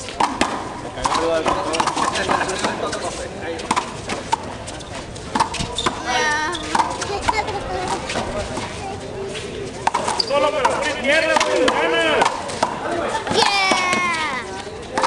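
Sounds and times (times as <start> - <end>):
rubber ball smacking concrete: 0.2 - 2.8
players shouting: 13.2 - 14.7.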